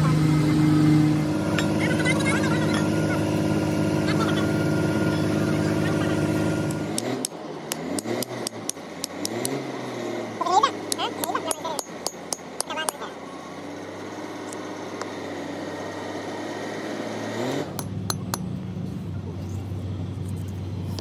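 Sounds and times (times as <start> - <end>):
steady mechanical drone: 0.0 - 21.0.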